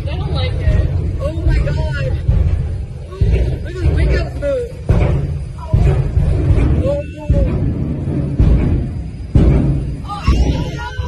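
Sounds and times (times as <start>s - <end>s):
dragster engines roaring: 0.0s - 11.0s.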